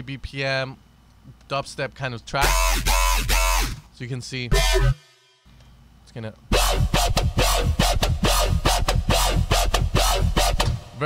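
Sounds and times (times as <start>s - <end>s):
gritty pulsing wobble bass: 2.4s - 3.9s, 4.5s - 5.1s, 6.5s - 10.7s.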